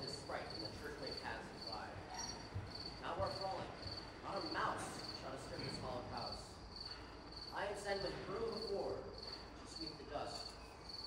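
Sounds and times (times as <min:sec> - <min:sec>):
cricket chirps: 0:00.0 - 0:11.0.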